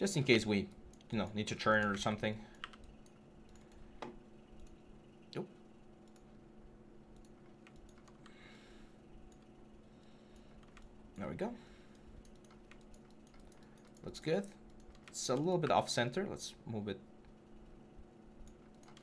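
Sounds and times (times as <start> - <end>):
low electrical hum: 0.0 - 19.0
keyboard and mouse clicks: 0.6 - 5.2, 6.0 - 6.4, 7.1 - 8.4, 10.3 - 11.0, 11.9 - 15.9, 18.4 - 19.0.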